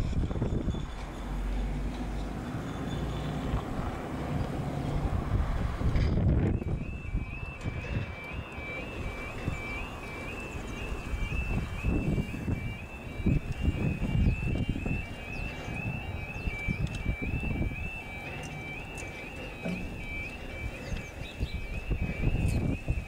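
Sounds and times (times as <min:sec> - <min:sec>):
wind noise on microphone: 0:00.0 - 0:02.6, 0:03.4 - 0:23.0
level crossing alarm warbling: 0:04.3 - 0:23.0.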